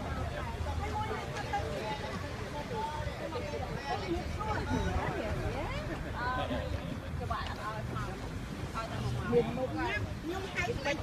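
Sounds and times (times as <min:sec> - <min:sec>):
faint people talking: 0:00.0 - 0:11.0.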